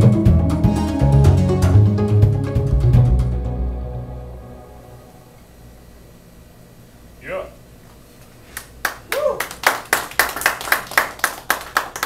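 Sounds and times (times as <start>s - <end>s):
audience clapping: 8.5s - 12.0s.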